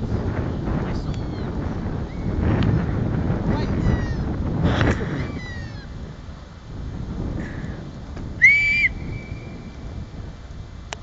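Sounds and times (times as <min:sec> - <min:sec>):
wind buffeting microphone: 0:00.0 - 0:11.0
short falling high-pitched calls: 0:08.4 - 0:09.6
high whistle-like tone: 0:08.4 - 0:09.8.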